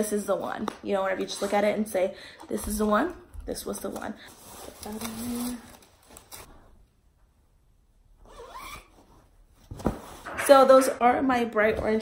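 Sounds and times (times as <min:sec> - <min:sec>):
zipper being pulled closed: 0:08.3 - 0:08.9.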